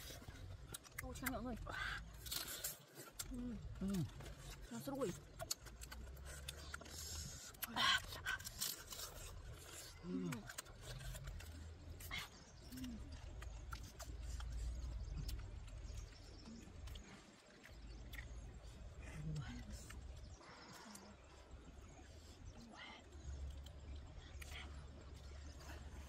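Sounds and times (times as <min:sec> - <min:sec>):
chewing and lip-smacking: 0:00.0 - 0:26.0.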